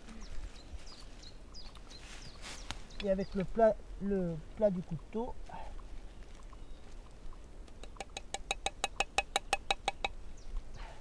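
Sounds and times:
ringing metallic taps: 0:08.0 - 0:10.2.

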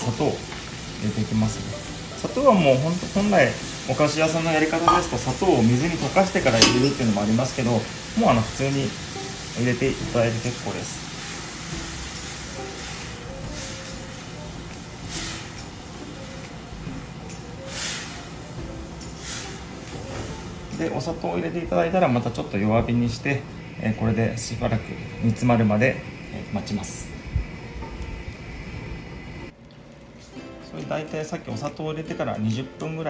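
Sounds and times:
beans simmering hiss: 0:00.0 - 0:33.0
kitchen background noise: 0:00.0 - 0:33.0.

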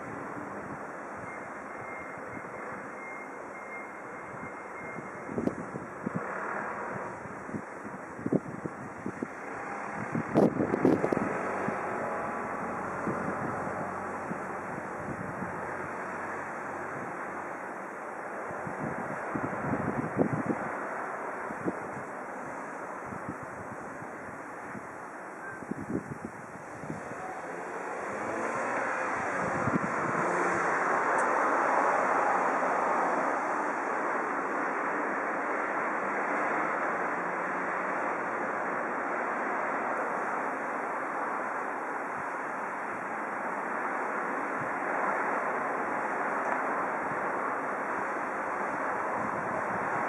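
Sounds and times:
steady rush of noise: 0:00.0 - 0:50.0
wind buffeting microphone: 0:04.3 - 0:17.4, 0:18.4 - 0:22.2, 0:22.9 - 0:33.2, 0:48.7 - 0:50.0.

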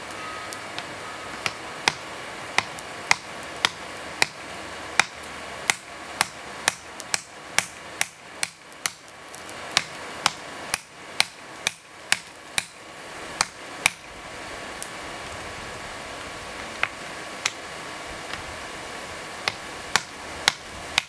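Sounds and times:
hammer striking hot metal: 0:00.0 - 0:04.4, 0:05.0 - 0:09.0, 0:09.7 - 0:12.8, 0:19.4 - 0:21.0.

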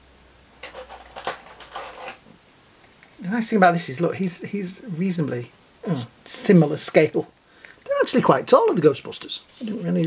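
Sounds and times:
plastic toys clicking and clattering: 0:00.6 - 0:02.2.

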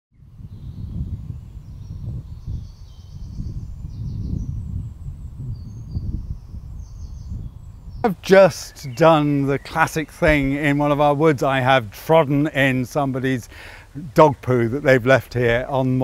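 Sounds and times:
birdsong trills: 0:00.1 - 0:16.0
wind buffeting microphone: 0:00.1 - 0:16.0.

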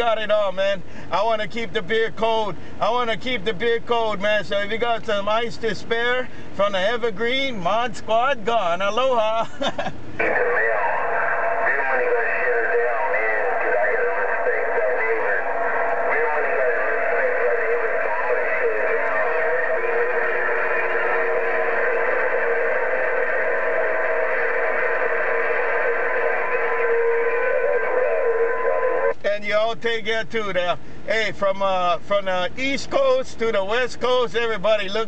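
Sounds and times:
garbled radio voices: 0:00.0 - 0:09.6, 0:10.2 - 0:35.0
radio whistle tones: 0:10.2 - 0:29.2.

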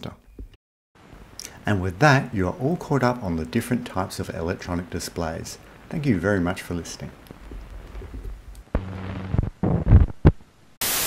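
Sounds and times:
low electrical hum: 0:01.0 - 0:09.4
hissing tv static: 0:01.1 - 0:10.2.

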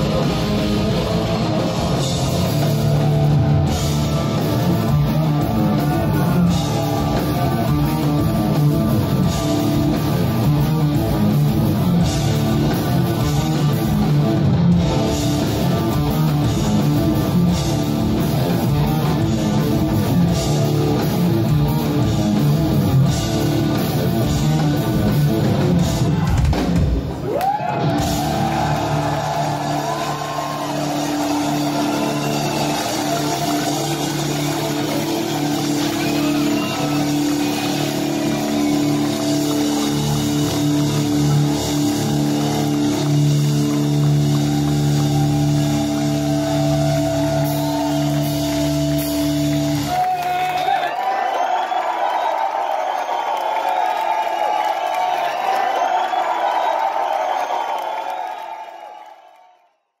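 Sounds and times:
heavy metal band playing: 0:00.0 - 0:50.8
crowd cheering and shouting: 0:00.0 - 1:00.0.

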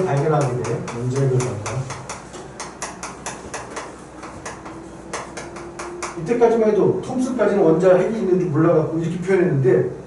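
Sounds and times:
chalk writing on chalkboard: 0:00.0 - 0:06.2.

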